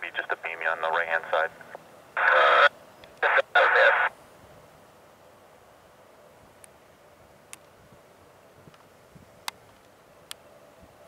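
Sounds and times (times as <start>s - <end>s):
tinny radio voice transmission: 0.0s - 4.1s
faint radio hiss: 0.0s - 11.0s.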